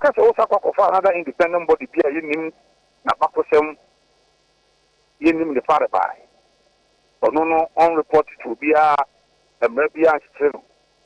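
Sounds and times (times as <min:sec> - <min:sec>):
person speaking over phone: 0:00.0 - 0:03.8, 0:05.2 - 0:06.2, 0:07.2 - 0:10.6
faint line noise hum: 0:00.0 - 0:11.0.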